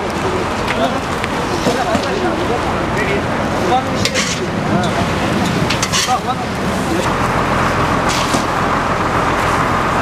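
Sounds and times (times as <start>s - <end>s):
fire rumbling: 0.0s - 10.0s.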